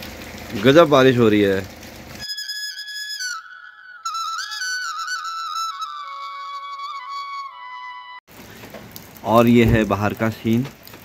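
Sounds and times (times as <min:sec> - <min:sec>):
solo flute melody: 0:02.2 - 0:08.2.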